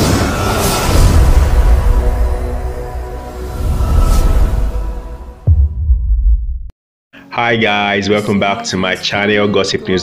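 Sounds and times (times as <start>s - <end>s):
music tail: 0.0s - 6.7s
deep bass impact: 0.9s - 6.7s.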